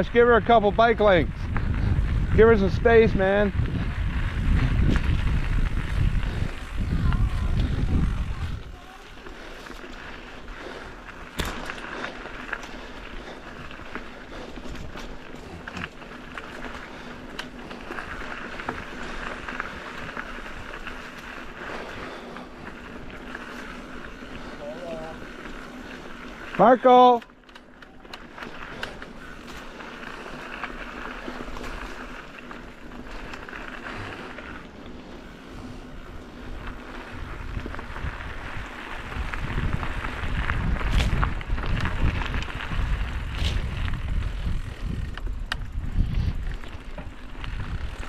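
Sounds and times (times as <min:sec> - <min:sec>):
wind buffeting microphone: 0:00.0 - 0:11.5, 0:35.2 - 0:48.0
bike rattling: 0:00.0 - 0:48.0
tyres crunching over dirt: 0:00.4 - 0:48.0.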